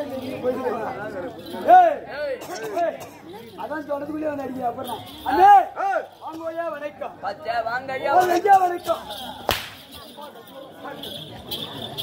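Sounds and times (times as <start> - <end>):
rope whip cracking: 9.4 - 10.0.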